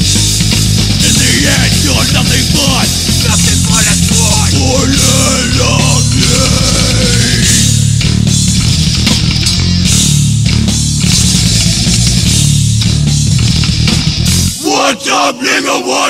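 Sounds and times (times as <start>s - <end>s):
distorted guitars and bass: 0.0s - 14.6s
person shouting: 1.0s - 7.8s.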